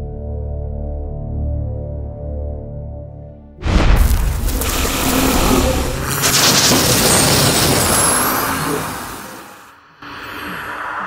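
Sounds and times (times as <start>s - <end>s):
boom: 3.6s - 9.7s
rushing noise: 3.6s - 11.0s.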